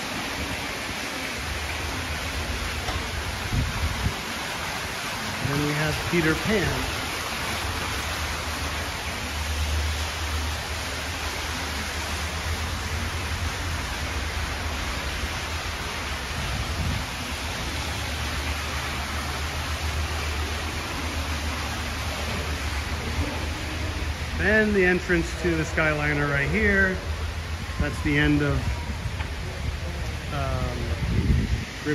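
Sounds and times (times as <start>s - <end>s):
fountain water splashing: 0.0s - 31.9s.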